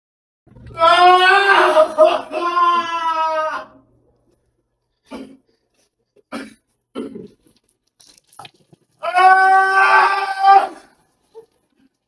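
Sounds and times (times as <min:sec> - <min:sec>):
person crying out: 0:00.8 - 0:03.8, 0:09.0 - 0:10.9.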